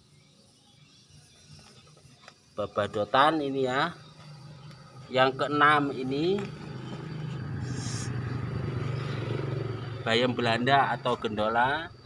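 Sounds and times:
small engine droning: 3.7 - 12.0.

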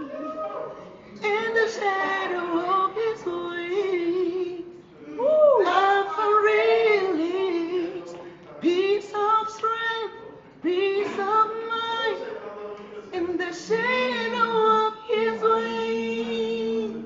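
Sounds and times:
young man singing unaccompanied: 1.1 - 4.8, 5.6 - 12.3, 13.1 - 17.0.

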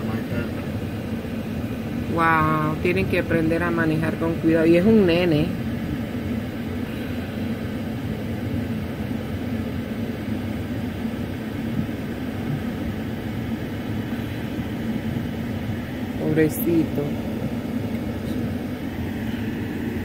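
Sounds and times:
faint constant hum: 0.0 - 20.0
vehicle engines idling: 0.0 - 20.0.

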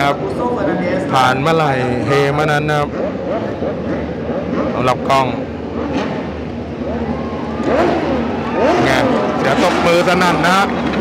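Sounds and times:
race motorcycle engines revving: 0.0 - 11.0.

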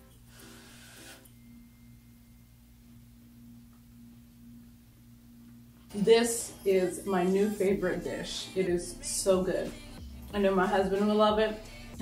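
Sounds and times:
faint steady hum: 0.0 - 10.9.

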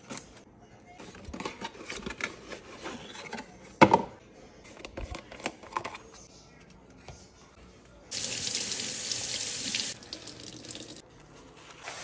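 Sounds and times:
kitchen tap running: 8.1 - 11.0.

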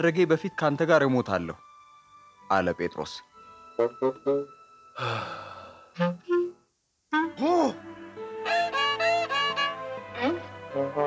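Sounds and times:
man sighing: 5.0 - 6.0
man speaking: 7.3 - 7.8.

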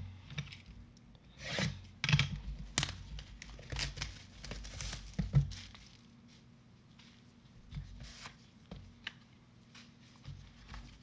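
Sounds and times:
plastic shrink wrap tearing: 2.8 - 6.1.

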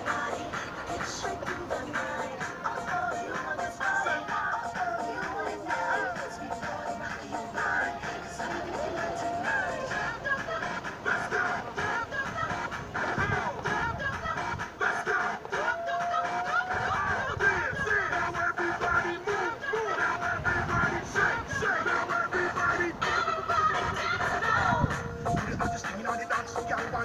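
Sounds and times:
music with melody: 0.0 - 27.0.

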